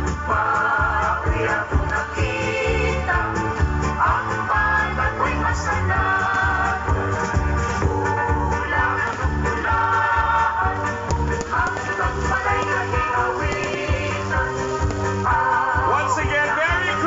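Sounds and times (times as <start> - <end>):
loud music with steady beat: 0.0 - 17.0.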